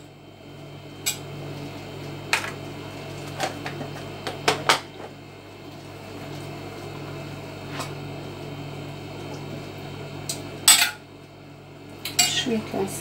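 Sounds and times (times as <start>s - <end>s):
appliance humming: 0.0s - 13.0s.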